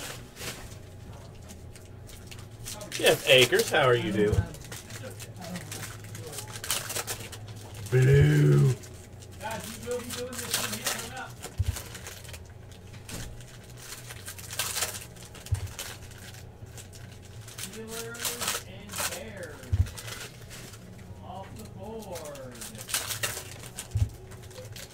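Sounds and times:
foil wrapper crinkling: 0.0 - 24.9
low voice hum: 7.8 - 8.9.

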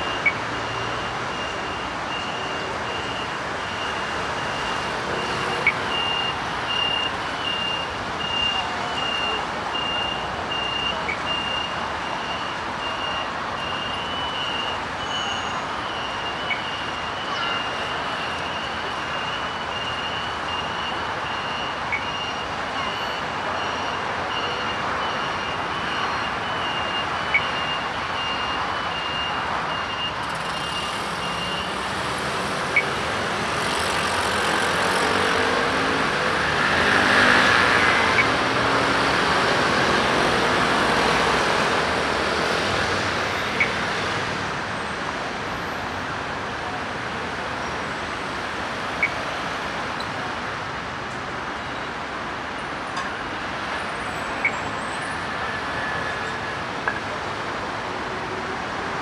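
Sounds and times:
crossing signal beeping: 0.0 - 44.4, 48.0 - 50.3, 53.0 - 57.1
street traffic: 0.0 - 59.0.

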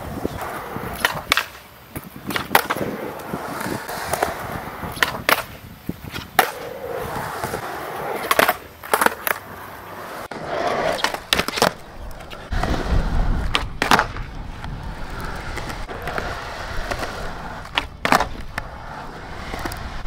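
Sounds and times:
skateboard clacking on concrete: 0.0 - 20.0
skateboard wheels rolling on concrete: 0.0 - 20.0.

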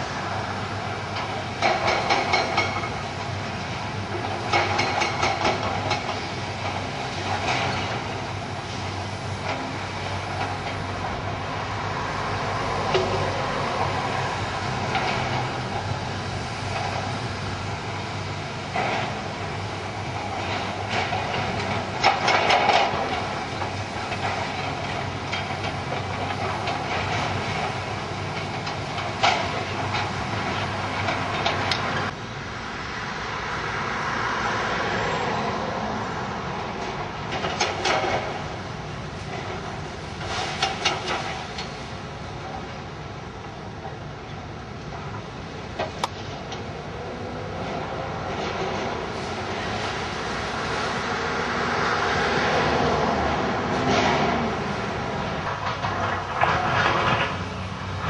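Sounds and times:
excavator diesel engines running: 0.0 - 58.0.

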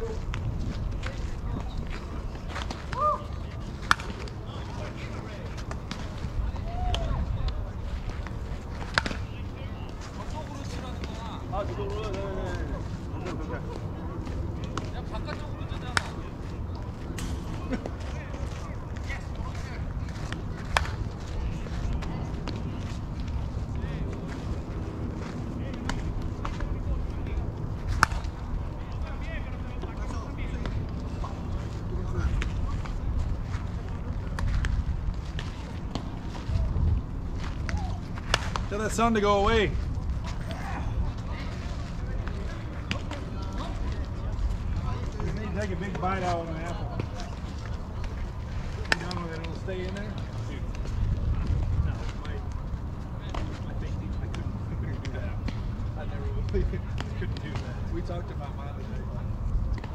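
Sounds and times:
faint distant voices: 0.0 - 59.9
wind rumbling on microphone: 0.0 - 59.9.

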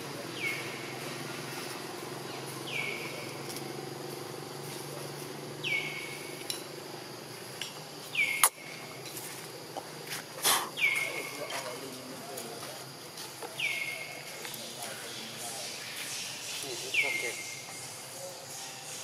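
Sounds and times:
bird calling: 5.6 - 6.5, 8.0 - 9.0, 10.4 - 11.8, 13.5 - 19.0.

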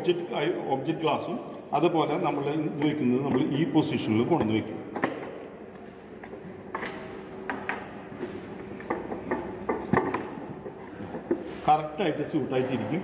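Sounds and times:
metal instrument clinks and knocks: 6.7 - 7.9.

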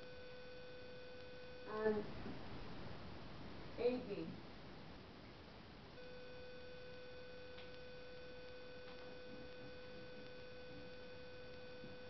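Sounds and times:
faint steady high tone: 0.0 - 2.2, 5.9 - 12.0
faint clicks: 6.9 - 7.8.

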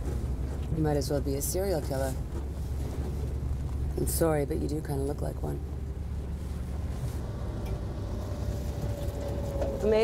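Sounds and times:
van engine and road noise: 0.0 - 10.0.

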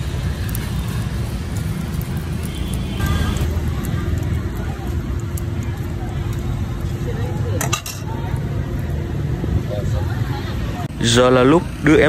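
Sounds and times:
street traffic rumble: 0.0 - 12.0
faint voices: 3.0 - 12.0
metal tongs clattering: 7.6 - 8.1.

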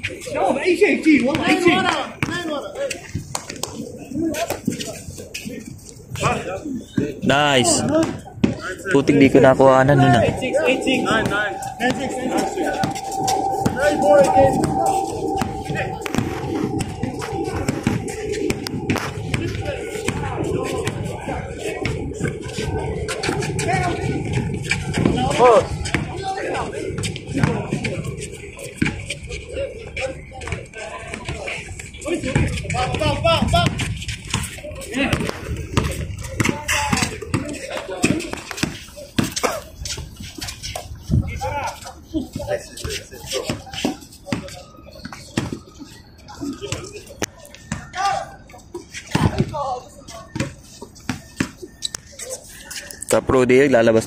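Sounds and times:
players calling out: 8.7 - 31.4.

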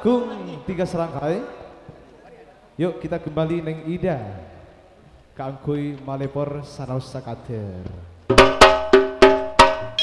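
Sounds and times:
ringing metal percussion: 8.8 - 10.0.

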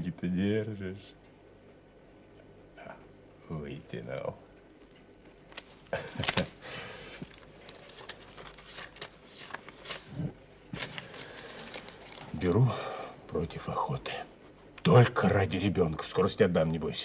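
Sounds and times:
paper rustling and crinkling: 5.5 - 12.6.

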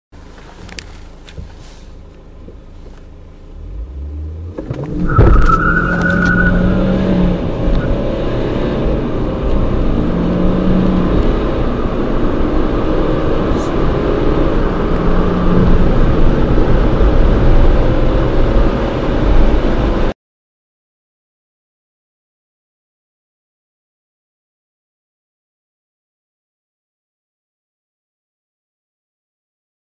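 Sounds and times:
road noise: 0.1 - 20.2
car engine accelerating hard: 0.3 - 20.1.

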